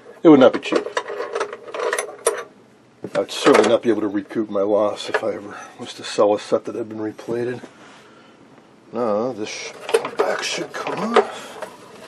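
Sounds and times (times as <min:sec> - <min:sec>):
small metallic clicks and scraping: 0:00.7 - 0:02.5.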